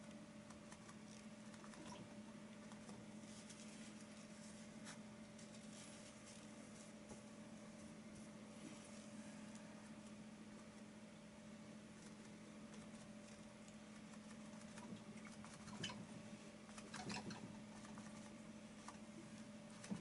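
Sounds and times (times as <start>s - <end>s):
low electrical hum: 0.0s - 20.0s.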